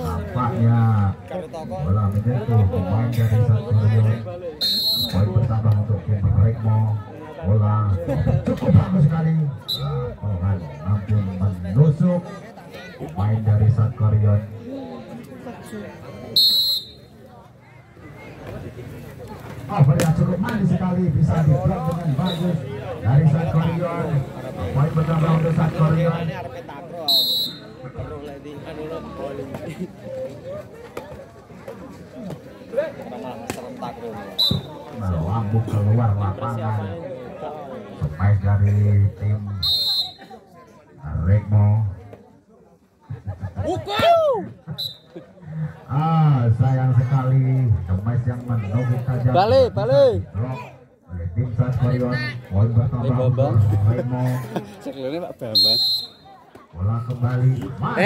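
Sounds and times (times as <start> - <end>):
faint crowd voices: 0.0 - 58.0
referee's whistle blast: 4.6 - 5.3, 16.4 - 17.1, 27.1 - 27.8, 34.4 - 34.8, 39.6 - 40.3, 44.8 - 45.2, 55.5 - 56.3.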